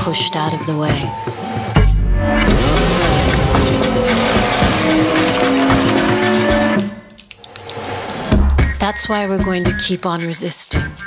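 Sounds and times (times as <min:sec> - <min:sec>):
heavy machinery engine noise: 0:02.5 - 0:06.8.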